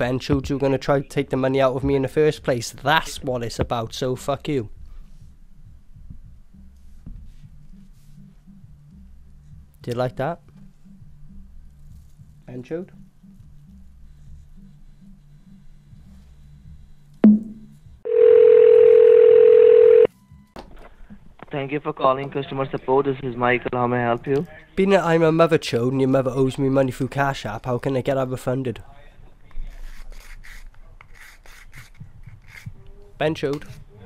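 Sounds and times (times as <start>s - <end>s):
telephone dial tone: 18.1s - 20.1s
scratchy rubbing noises: 29.6s - 34.0s.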